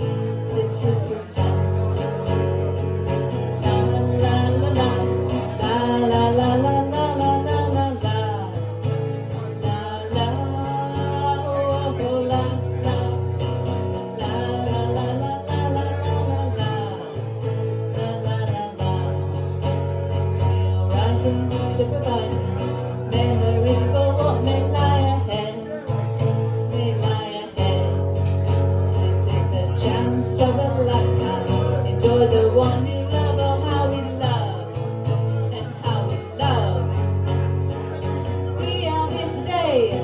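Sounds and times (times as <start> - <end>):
acoustic guitar strumming: 0.0 - 40.0
woman singing: 0.0 - 40.0.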